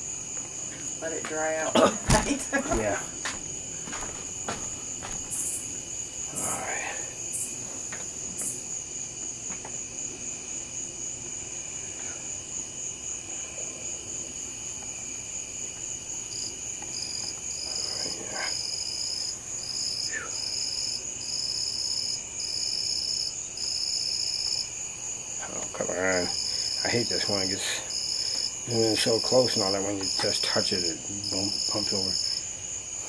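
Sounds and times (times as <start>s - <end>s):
insect high-pitched trill: 0.0s - 13.5s, 14.1s - 33.0s
insect calling in pulses: 5.3s - 7.6s.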